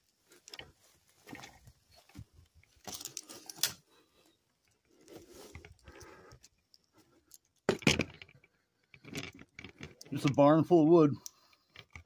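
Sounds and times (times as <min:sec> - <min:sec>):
footsteps through undergrowth: 0:00.0 - 0:03.8.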